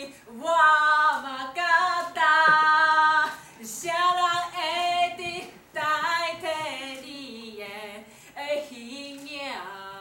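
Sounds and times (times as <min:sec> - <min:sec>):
women singing unaccompanied: 0:00.0 - 0:10.0
short breath: 0:08.1 - 0:08.4.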